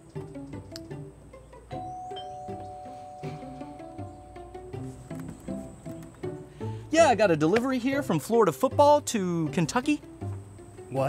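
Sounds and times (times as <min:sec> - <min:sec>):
plucked-string background music: 0:00.0 - 0:11.0
two-tone doorbell chime: 0:01.7 - 0:04.7.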